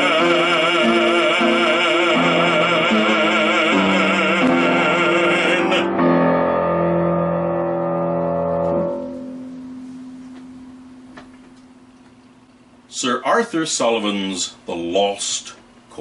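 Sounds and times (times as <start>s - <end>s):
man singing with vibrato: 0.0s - 6.0s
piano chord ringing: 0.0s - 12.0s.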